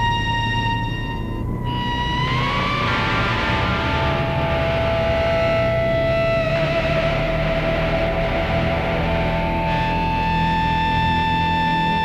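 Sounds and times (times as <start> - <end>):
low drone: 0.0 - 12.0
sustained electric tones: 0.0 - 12.0.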